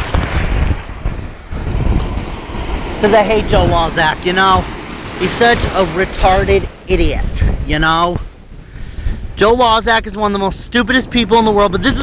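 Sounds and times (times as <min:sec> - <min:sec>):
surf washing over shallows: 0:00.0 - 0:12.0
wind buffeting microphone: 0:00.0 - 0:12.0.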